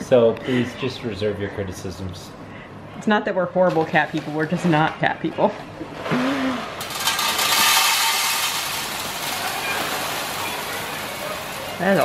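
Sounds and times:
cat litter pouring: 6.8 - 12.0.

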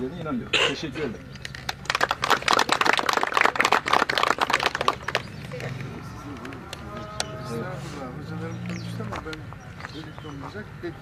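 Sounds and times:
people applauding: 1.5 - 5.4.

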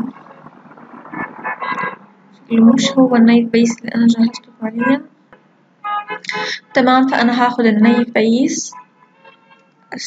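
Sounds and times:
mumbled speech: 2.5 - 5.0.

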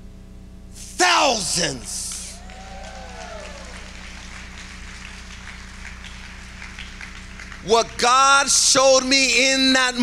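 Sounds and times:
sound system hum: 0.0 - 10.0.

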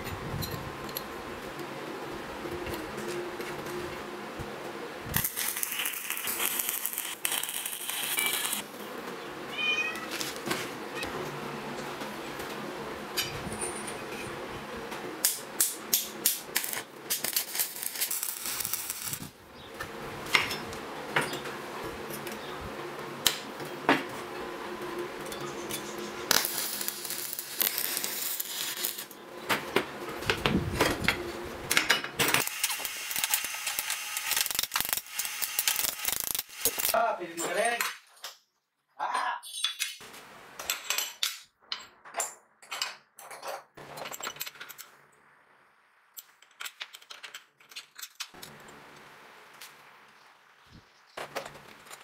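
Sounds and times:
metal parts clinking on workbench: 39.4 - 40.0.

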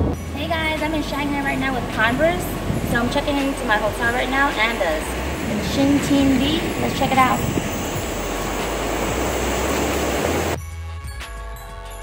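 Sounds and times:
city street noise: 0.0 - 10.6.

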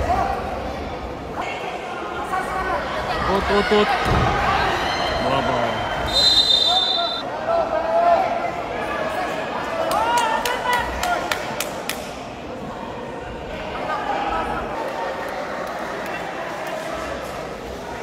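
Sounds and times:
referee's whistle: 6.1 - 7.2.

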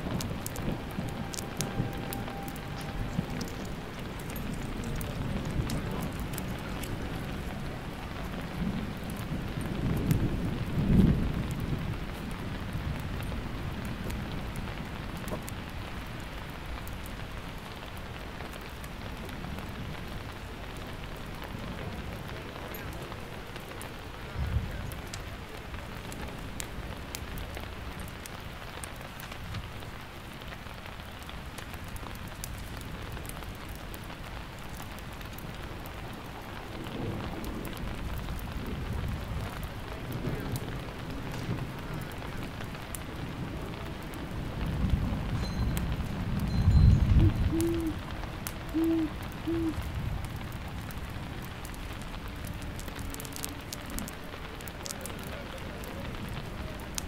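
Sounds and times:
low thunder rumbling: 0.0 - 17.4, 32.2 - 57.0
steady rain: 0.0 - 57.0.

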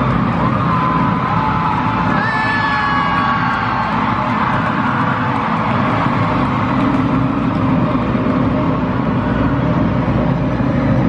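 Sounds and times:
large crowd noise: 0.0 - 11.0
music over stadium sound system: 0.0 - 11.0.

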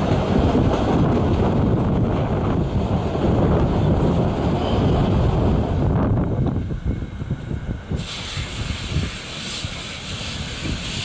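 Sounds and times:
steam train coaches passing: 0.0 - 11.0
wind buffeting microphone: 0.0 - 11.0.

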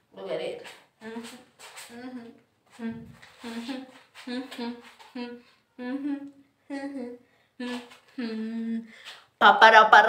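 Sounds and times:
woman humming: 1.0 - 8.9.

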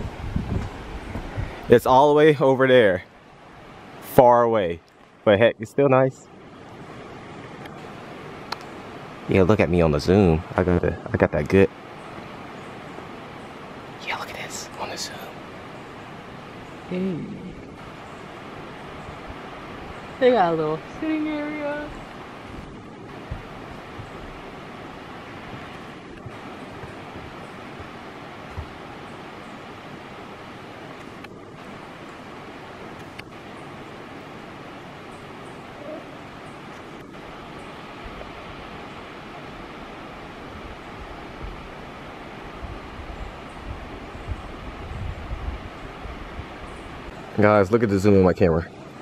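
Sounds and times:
wind buffeting microphone: 0.0 - 4.1, 6.3 - 49.0
waterfall rushing: 11.6 - 49.0.

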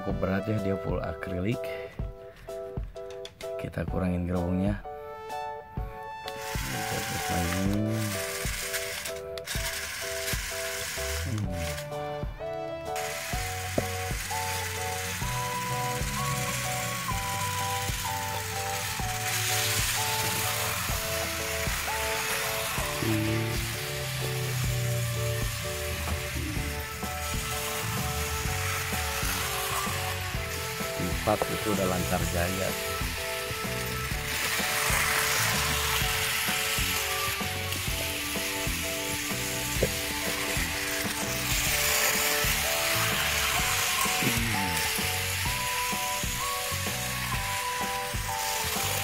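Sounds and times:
simple melody music: 0.0 - 49.0
toy train motor whirring: 6.2 - 49.0.

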